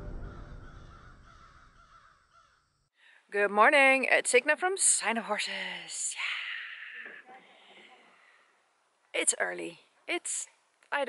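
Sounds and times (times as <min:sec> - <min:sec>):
crow-like cawing call: 0:00.0 - 0:02.8.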